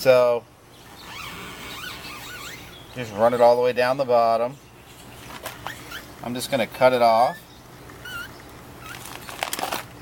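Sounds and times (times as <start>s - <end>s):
high squeaks of film scraped off: 1.0s - 2.8s, 5.4s - 6.1s, 8.0s - 9.7s.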